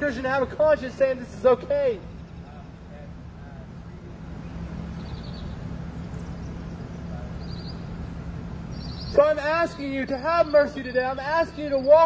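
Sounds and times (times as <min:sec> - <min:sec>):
low mechanical rumble: 0:00.0 - 0:12.0
faint high chirping: 0:04.4 - 0:12.0.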